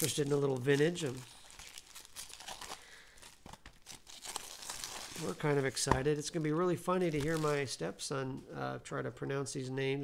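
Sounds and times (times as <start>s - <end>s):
plastic wrap crinkling: 0.0s - 7.8s.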